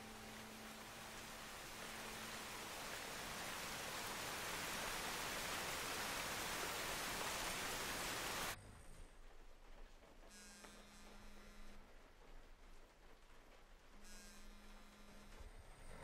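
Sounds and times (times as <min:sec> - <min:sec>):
heavy rainfall hissing: 0:00.0 - 0:08.6.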